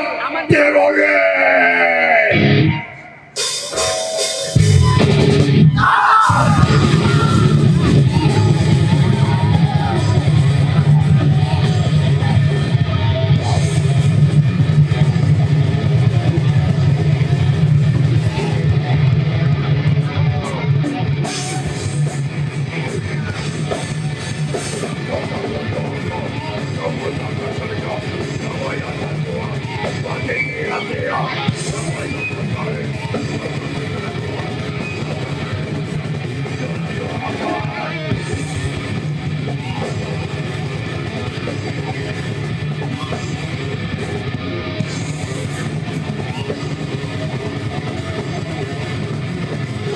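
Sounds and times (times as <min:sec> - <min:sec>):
live metal band playing: 0:00.0 - 0:49.9.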